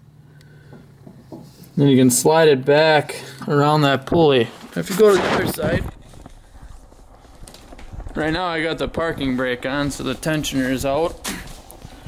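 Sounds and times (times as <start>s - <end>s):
faint footsteps: 0.7s - 1.8s, 4.1s - 12.0s
microphone handling rumble: 4.1s - 12.0s.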